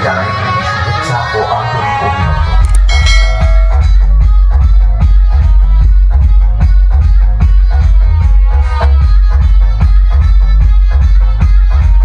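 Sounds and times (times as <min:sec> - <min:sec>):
loud music with steady beat: 0:00.2 - 0:12.0.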